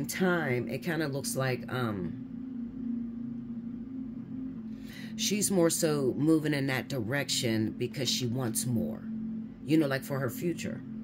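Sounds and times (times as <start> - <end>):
soft music with held low note: 0.0 - 11.0.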